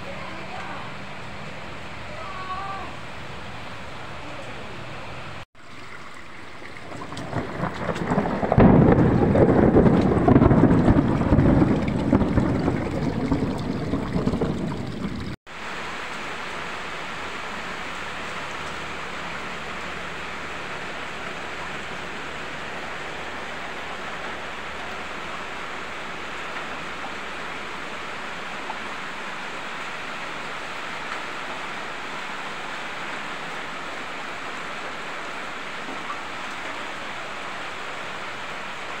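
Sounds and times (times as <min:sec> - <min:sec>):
rushing floodwater: 0:00.0 - 0:39.0
heavy rain: 0:06.2 - 0:39.0
rolling thunder: 0:06.8 - 0:15.4.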